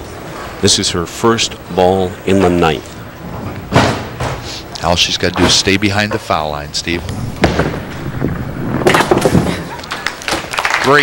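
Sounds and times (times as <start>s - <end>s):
bowling ball rolling on wooden lane: 5.4s - 10.5s
crash and clatter of pins: 7.4s - 10.7s.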